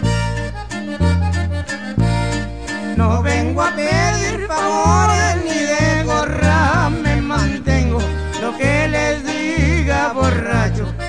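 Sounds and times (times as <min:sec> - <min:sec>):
accordion melody: 0:00.0 - 0:11.0
bass line: 0:00.0 - 0:11.0
plucked strings: 0:00.0 - 0:11.0.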